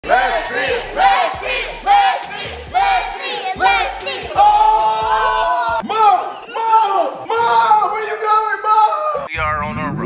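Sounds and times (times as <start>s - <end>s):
group shouting in unison: 0.0s - 9.3s.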